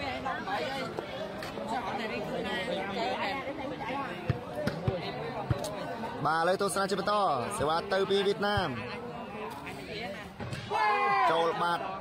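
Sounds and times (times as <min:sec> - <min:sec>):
crowd chatter: 0:00.0 - 0:12.0
volleyball bouncing on dirt: 0:04.2 - 0:05.8.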